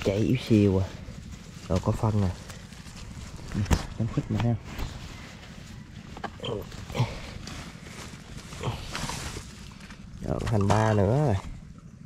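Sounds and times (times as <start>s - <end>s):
dry grass and leaves rustling: 0.0s - 11.9s.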